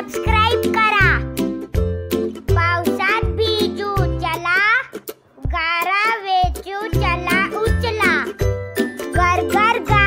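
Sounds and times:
child singing: 0:02.6 - 0:08.3, 0:09.1 - 0:10.0.

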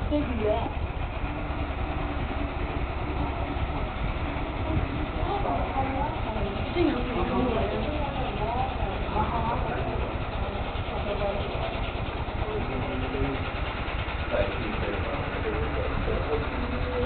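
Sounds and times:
distant people talking: 0:00.0 - 0:17.0
steady low rumble: 0:00.0 - 0:17.0.

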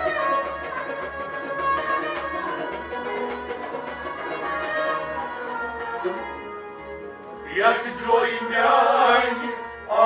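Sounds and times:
bowed string instrument: 0:00.0 - 0:10.0
harmonium melody: 0:00.0 - 0:10.0.

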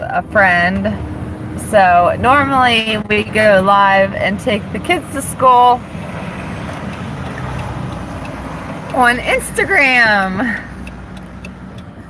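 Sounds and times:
car road and wind noise: 0:00.0 - 0:12.0.

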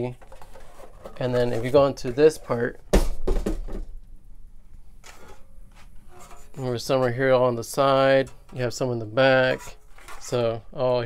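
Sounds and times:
handling of metal enclosure: 0:00.0 - 0:02.7, 0:08.1 - 0:10.6.

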